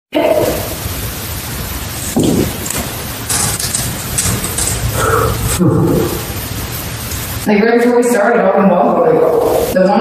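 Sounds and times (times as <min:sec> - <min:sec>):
camera recording hiss: 0:00.1 - 0:10.0
breathy burst of hiss: 0:04.9 - 0:06.2.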